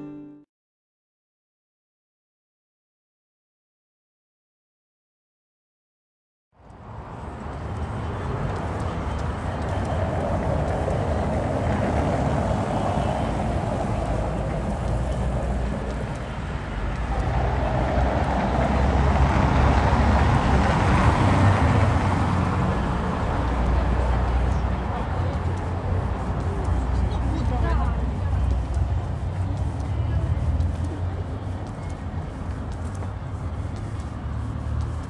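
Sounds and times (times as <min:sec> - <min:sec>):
low rumble of street traffic: 0:06.6 - 0:35.0.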